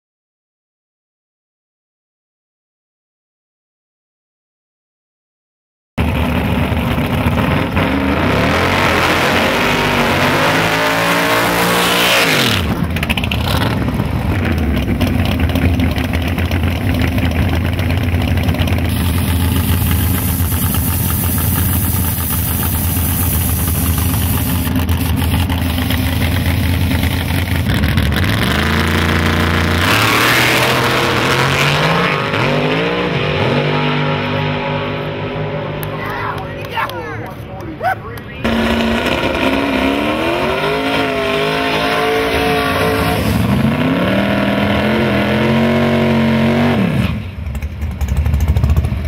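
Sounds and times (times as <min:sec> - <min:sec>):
drag car engines revving: 0:06.0 - 0:49.0.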